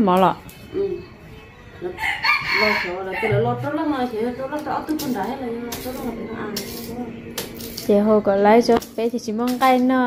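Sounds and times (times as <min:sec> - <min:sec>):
rooster crowing: 0:02.0 - 0:03.5.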